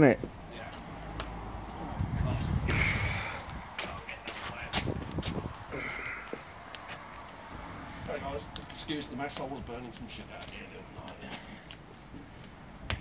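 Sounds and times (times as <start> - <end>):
wind or handling rumble: 1.5 - 13.0
wood fire crackling and popping: 3.4 - 13.0.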